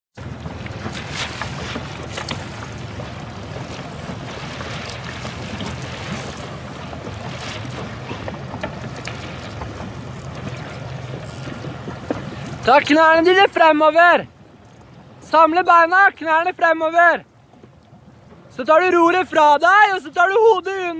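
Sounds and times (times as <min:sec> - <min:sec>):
wind buffeting microphone: 0:00.2 - 0:15.2
motorboat engine running: 0:00.2 - 0:15.4, 0:17.2 - 0:19.4
water splashing against hull: 0:00.2 - 0:20.9.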